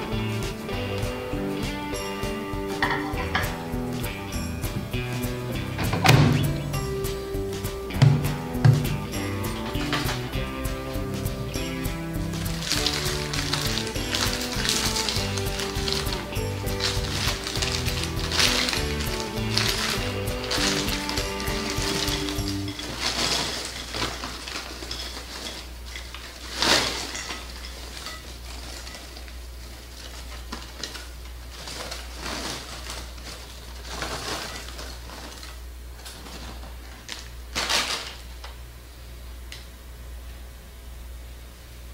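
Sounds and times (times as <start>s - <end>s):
background music: 0.0s - 23.4s
paper bag rustling: 0.0s - 38.4s
low steady hum: 0.0s - 41.9s
popcorn poured onto glass plate: 12.2s - 29.3s.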